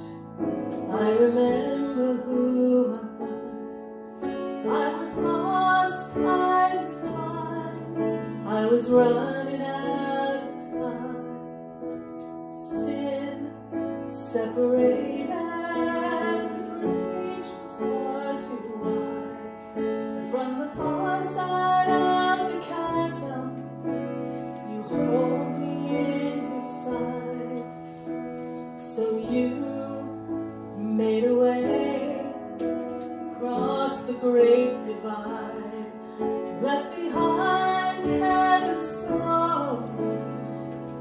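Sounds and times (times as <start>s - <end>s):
piano accompaniment: 0.0s - 41.0s
woman singing gospel song: 0.9s - 3.8s, 4.7s - 11.4s, 12.6s - 19.5s, 20.2s - 23.6s, 24.6s - 27.8s, 28.8s - 30.1s, 33.3s - 40.0s.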